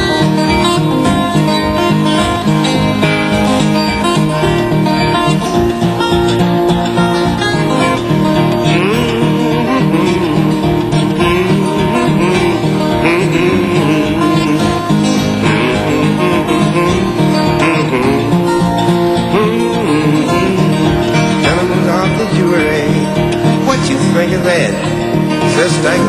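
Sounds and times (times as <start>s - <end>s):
fingerpicked acoustic guitar: 0.0s - 26.0s.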